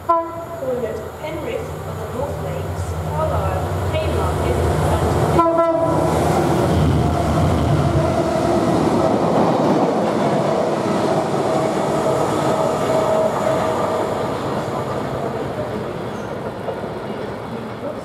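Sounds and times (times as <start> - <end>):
train horn blast: 0.0 - 0.6, 5.3 - 6.2
diesel locomotive engine drone: 0.0 - 18.0
train wheels rumbling and whining: 0.0 - 18.0.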